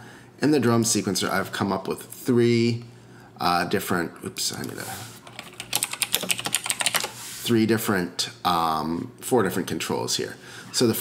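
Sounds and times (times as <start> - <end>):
keyboard typing: 4.5 - 7.2.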